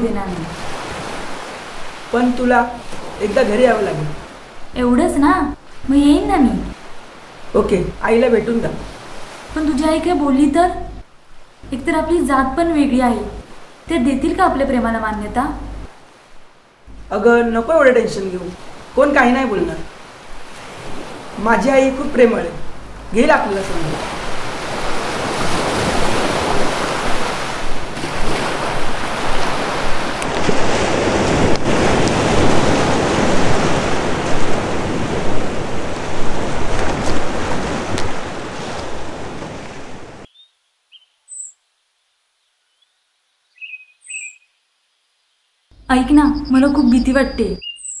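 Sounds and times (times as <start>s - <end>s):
surf washing onto beach: 0.0s - 40.3s
bird chirps: 40.3s - 41.7s, 42.4s - 44.6s, 45.2s - 48.0s.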